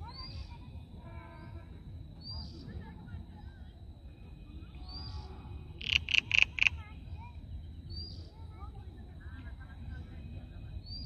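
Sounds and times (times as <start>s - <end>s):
faint chirps: 0.0s - 11.0s.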